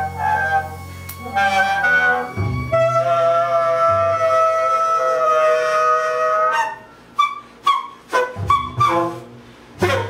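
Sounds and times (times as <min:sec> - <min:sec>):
tenor saxophone notes: 0:00.0 - 0:06.8.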